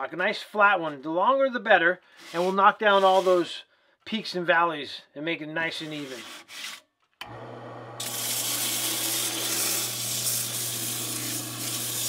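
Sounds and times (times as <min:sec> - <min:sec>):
lathe motor humming: 0:07.2 - 0:12.0
sanding block rasping on wood: 0:08.2 - 0:12.0.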